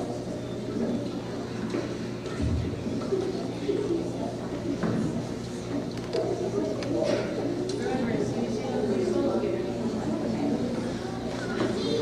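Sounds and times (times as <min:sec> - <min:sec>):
many children's voices: 0:00.0 - 0:12.0.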